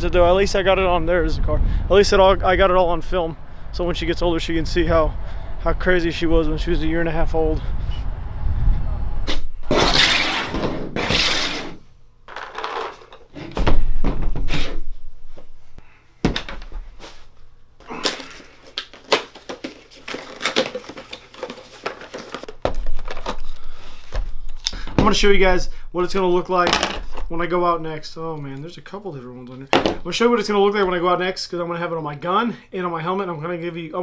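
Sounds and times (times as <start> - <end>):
heavy thunk: 13.5 - 14.5.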